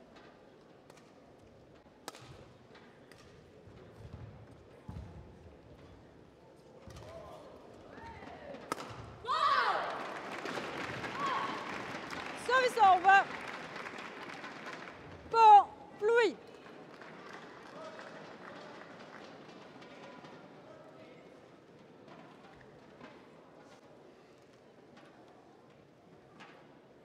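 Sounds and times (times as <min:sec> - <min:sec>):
crowd noise and voices: 0:00.0 - 0:27.0
racket striking shuttlecock: 0:08.7 - 0:09.1.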